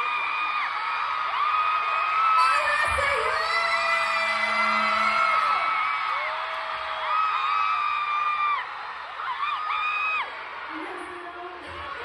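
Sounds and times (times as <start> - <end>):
concert crowd screaming and cheering: 0.0 - 12.0.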